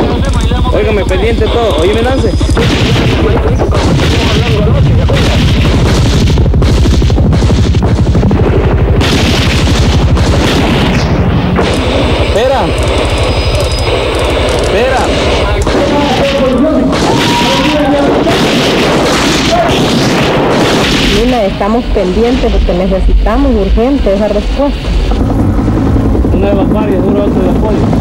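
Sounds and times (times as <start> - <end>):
rifle fire: 0.0 - 22.8
heavy booms: 1.3 - 12.8, 13.9 - 28.0.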